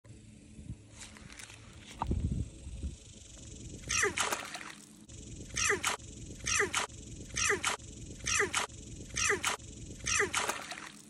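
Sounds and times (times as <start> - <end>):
frog squawking distress calls: 3.8 - 4.8, 5.4 - 11.0.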